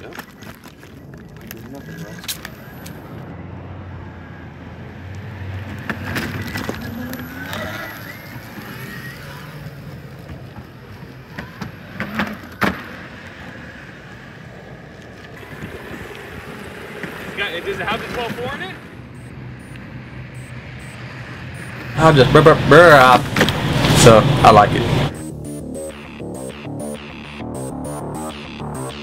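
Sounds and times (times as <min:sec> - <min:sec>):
skateboard wheels rolling on concrete: 0:04.8 - 0:25.0
wheels knocking over cracks: 0:05.7 - 0:13.6.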